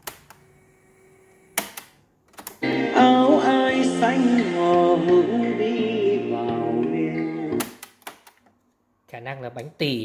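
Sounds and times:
song from cassette player: 2.6s - 7.8s.

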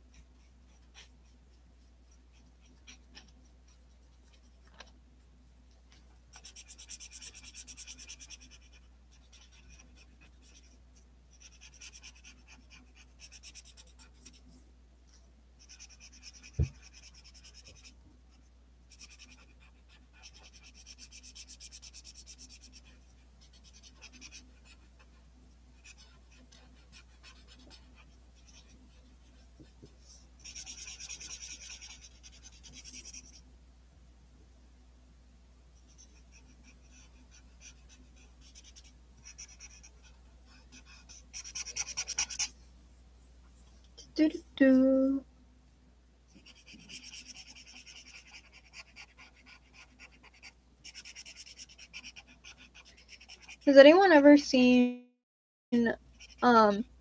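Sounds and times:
low steady hum: 0.0s - 55.0s
marker scribbling on paper: 6.3s - 14.4s, 15.6s - 17.9s, 18.9s - 25.2s, 25.8s - 29.5s, 30.4s - 33.4s, 35.9s - 42.5s, 46.4s - 53.8s, 56.2s - 56.4s.

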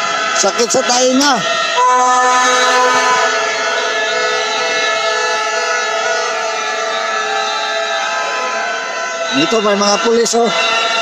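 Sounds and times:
many whistles blowing: 1.8s - 4.8s.

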